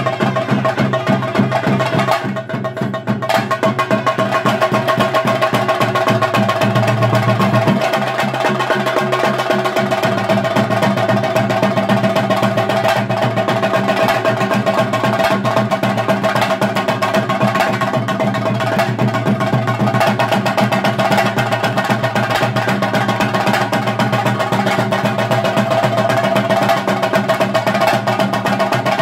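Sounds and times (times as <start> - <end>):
drums struck with sticks: 0.0 - 29.0.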